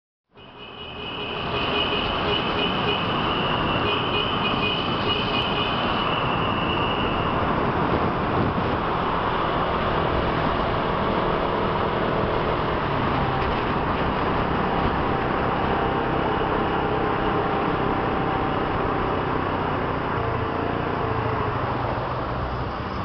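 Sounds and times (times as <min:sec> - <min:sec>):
tunnel traffic noise: 0:00.3 - 0:23.0.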